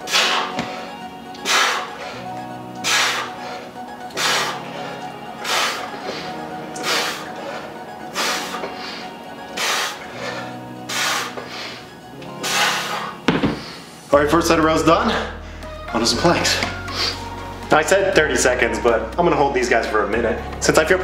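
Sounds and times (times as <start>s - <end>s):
forceful hissing exhales: 0.0s - 2.0s, 2.8s - 4.8s, 8.1s - 11.8s, 12.4s - 14.1s
background music: 0.0s - 21.0s.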